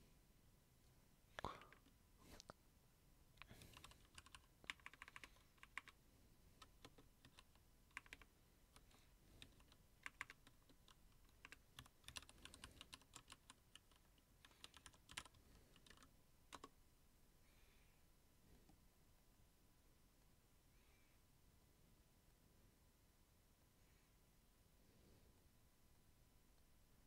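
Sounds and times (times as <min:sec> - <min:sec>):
faint keyboard typing: 0:01.4 - 0:02.6, 0:03.4 - 0:06.0, 0:06.6 - 0:16.8.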